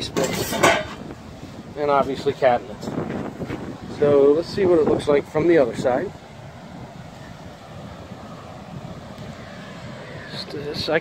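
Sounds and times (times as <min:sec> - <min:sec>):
ocean surf: 0:00.0 - 0:11.0
wind on microphone: 0:00.0 - 0:11.0.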